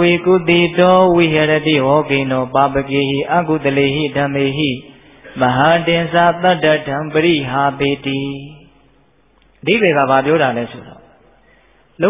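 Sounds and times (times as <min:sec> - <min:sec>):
monk chanting: 0:00.0 - 0:08.9, 0:09.6 - 0:11.3.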